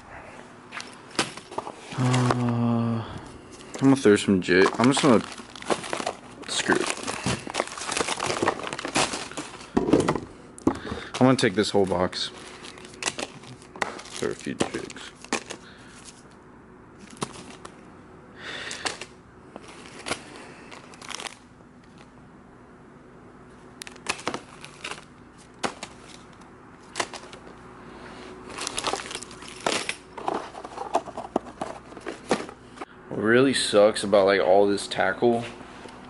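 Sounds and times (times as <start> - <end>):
plastic packs crinkling: 0.8 - 2.7, 3.5 - 16.3, 17.0 - 17.8, 18.6 - 22.1, 23.8 - 27.6, 28.4 - 32.9.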